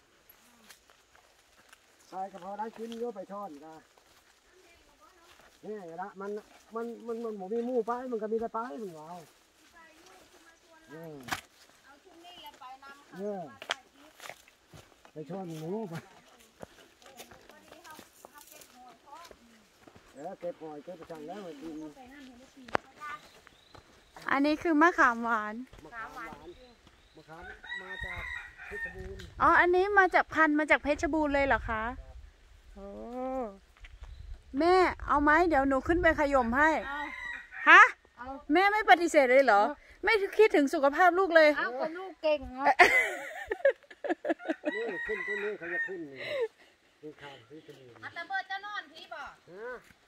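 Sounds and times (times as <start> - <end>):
rooster crowing: 27.4 - 29.2, 36.8 - 37.8, 44.3 - 46.3.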